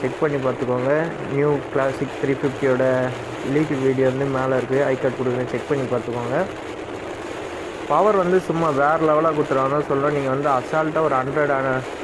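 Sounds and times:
person speaking: 0.0 - 6.6, 7.9 - 11.9
motorcycle engine running: 0.0 - 12.0
road noise: 0.0 - 12.0.

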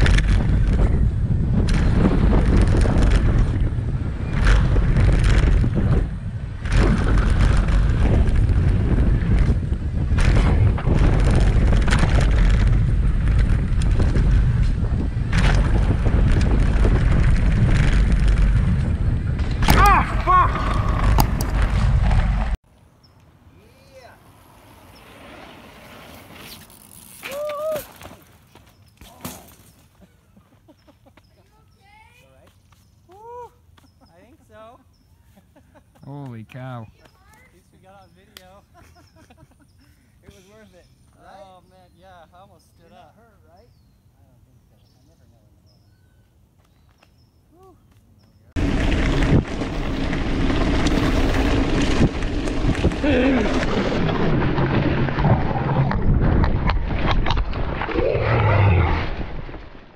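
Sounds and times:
tyres rumbling over dirt: 0.0 - 22.6, 48.5 - 59.9
wind buffeting microphone: 0.0 - 22.6, 48.6 - 59.9
person shouting: 19.8 - 20.9, 27.3 - 27.9.

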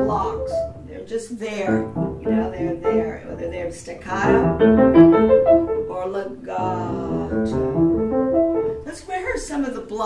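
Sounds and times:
person speaking: 0.0 - 4.6, 5.8 - 7.8
upright piano arpeggio: 0.0 - 9.6.

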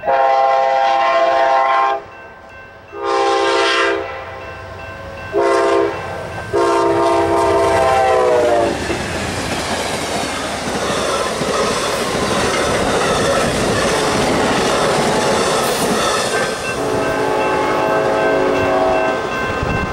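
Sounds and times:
train air horn: 0.0 - 2.1, 2.9 - 4.5, 5.3 - 8.9, 16.8 - 19.2
train wheels rolling on rails: 4.4 - 19.9.

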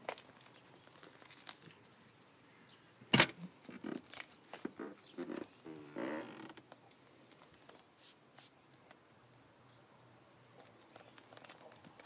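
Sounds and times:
small clicks and rustles: 0.0 - 2.2, 3.6 - 5.6, 6.2 - 9.4, 10.0 - 12.0.

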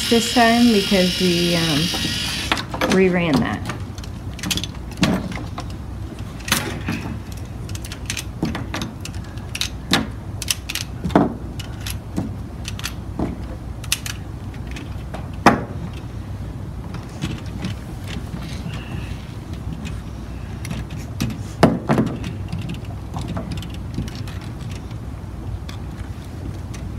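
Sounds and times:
steady low hum: 0.0 - 26.9
plastic parts clicking: 3.6 - 13.0, 13.8 - 16.0, 20.6 - 25.0.

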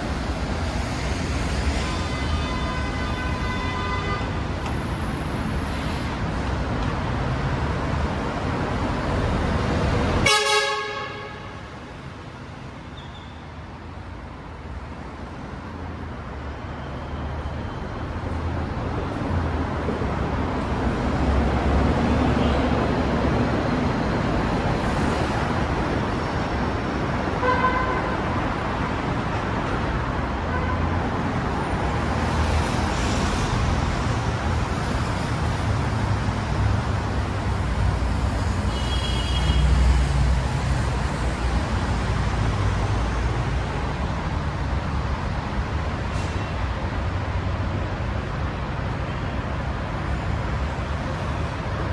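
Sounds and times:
road traffic passing: 0.0 - 51.9
car horn toot: 10.2 - 11.5
heavy vehicle rumble: 39.6 - 51.9.

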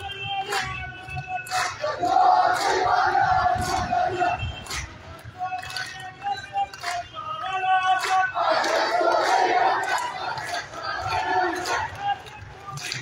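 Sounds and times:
sharp rhythmic beats: 0.0 - 13.0
crowd of men chanting: 0.3 - 13.0.

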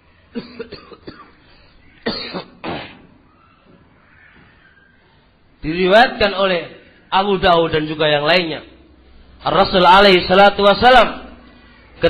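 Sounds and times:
person clearing throat: 0.4 - 1.4, 2.0 - 3.1
person coughing: 0.4 - 1.4, 2.0 - 3.1.

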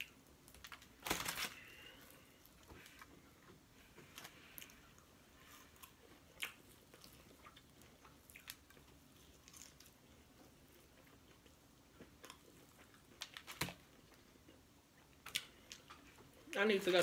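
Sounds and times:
person chewing and biting food: 2.0 - 16.4.

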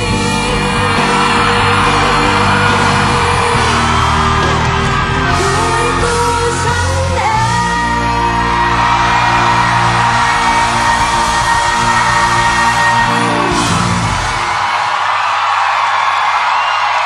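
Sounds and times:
live band playing pop ballad: 0.0 - 14.6
singer holding long note: 0.0 - 14.8
audience cheering and screaming: 0.0 - 17.0.

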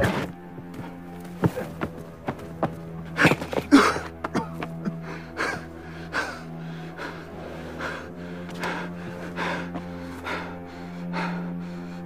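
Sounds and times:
low music drone: 0.0 - 12.0
man gasping and sobbing: 3.1 - 12.0.

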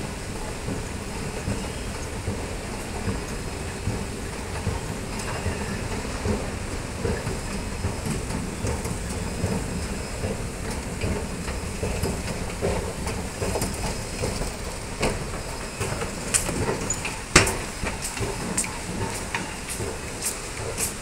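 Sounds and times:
escalator rumbling: 0.0 - 21.0
clicks and rattles of moving steps: 0.6 - 21.0.

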